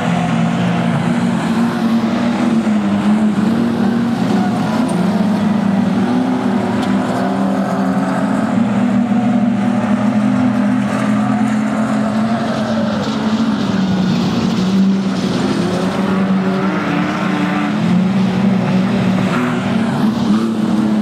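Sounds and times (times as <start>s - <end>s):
race car engines running hard: 0.0s - 21.0s.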